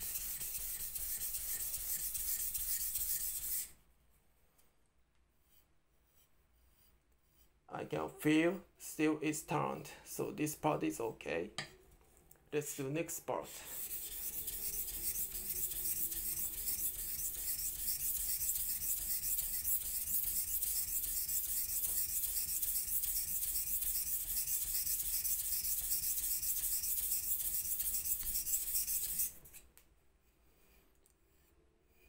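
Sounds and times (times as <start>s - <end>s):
knife scraping on whetstone: 0.0s - 3.7s, 5.4s - 7.5s, 13.6s - 29.7s.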